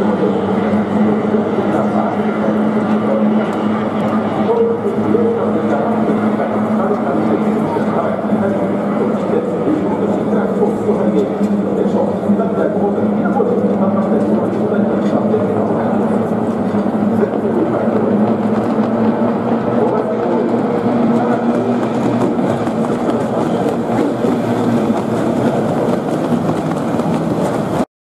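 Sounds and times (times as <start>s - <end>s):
outboard boat engines: 0.0s - 27.8s
crowd voices hubbub: 0.0s - 27.9s.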